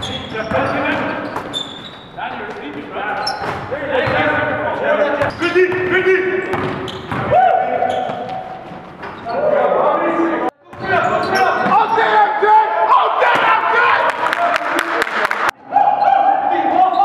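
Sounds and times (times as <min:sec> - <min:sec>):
players' voices: 0:00.0 - 0:17.0
basketball bouncing on gym floor: 0:02.5 - 0:09.1.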